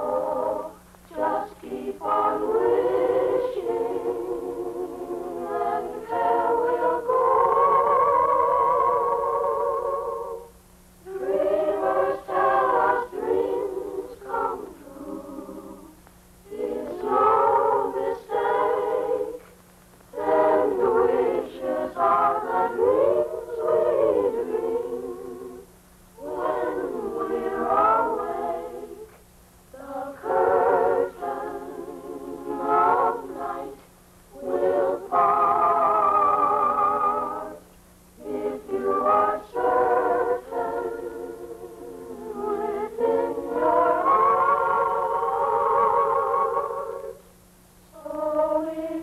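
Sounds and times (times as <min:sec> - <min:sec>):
children's choir singing: 0:00.0 - 0:10.5, 0:11.1 - 0:19.5, 0:20.1 - 0:29.1, 0:29.8 - 0:37.6, 0:38.2 - 0:47.2, 0:47.9 - 0:49.0
faint low hum: 0:00.0 - 0:49.0.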